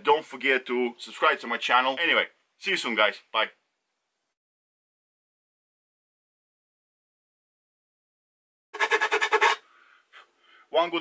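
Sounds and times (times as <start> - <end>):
faint rubbing: 8.8 - 9.6
file scraping fiberglass edge: 8.8 - 9.6.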